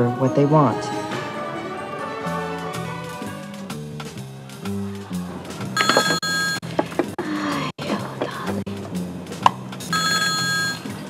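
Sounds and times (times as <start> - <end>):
soft background music: 0.0 - 4.1, 7.2 - 11.0
desk telephone ringing: 5.8 - 6.7, 9.9 - 11.0.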